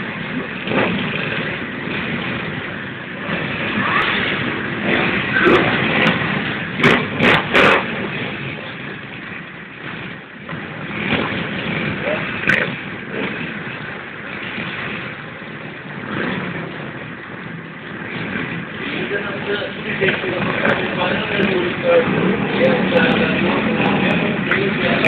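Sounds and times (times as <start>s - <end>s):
motorcycle engines idling and revving: 0.0s - 25.0s.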